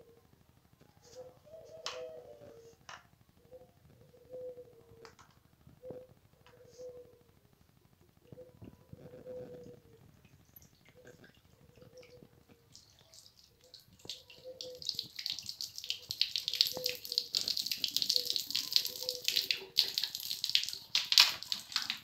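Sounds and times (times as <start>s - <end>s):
water pouring and splashing: 10.2s - 22.0s.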